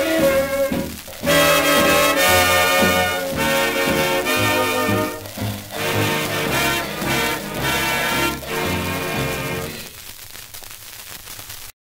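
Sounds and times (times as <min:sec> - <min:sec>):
record surface hiss and crackle: 0:00.0 - 0:11.8.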